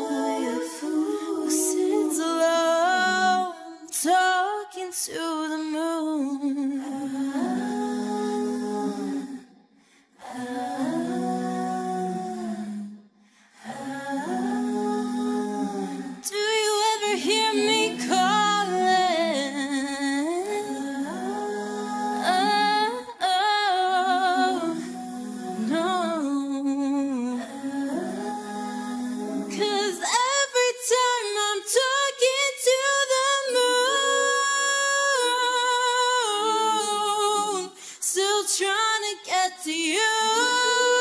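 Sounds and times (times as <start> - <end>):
hummed vocal harmony: 0.0 - 41.0.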